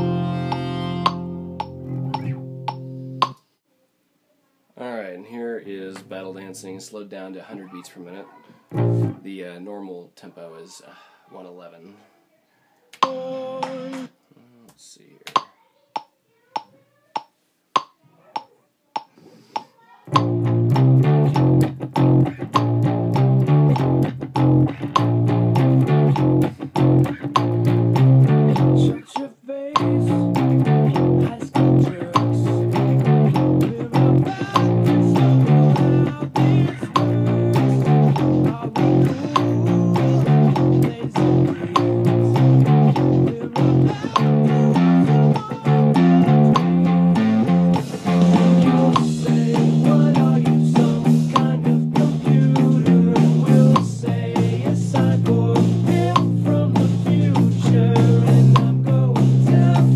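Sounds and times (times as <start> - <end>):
count-in clicks: 0.0 - 3.4, 15.3 - 21.6, 23.7 - 25.1, 34.5 - 47.0
electric bass guitar playing: 0.0 - 3.4, 8.7 - 9.2, 20.1 - 29.0, 29.8 - 59.9.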